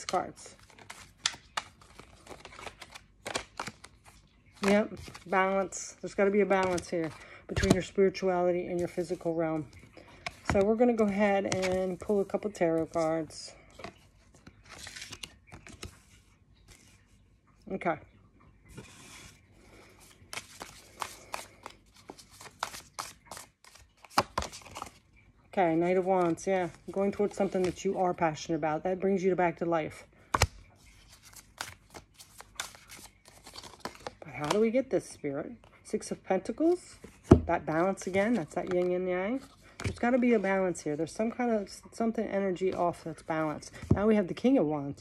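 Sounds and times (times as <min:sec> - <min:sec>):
cards shuffling: 0:00.0 - 0:08.0, 0:08.7 - 0:17.0, 0:18.7 - 0:25.0, 0:25.8 - 0:28.0, 0:30.3 - 0:34.8, 0:37.0 - 0:40.5.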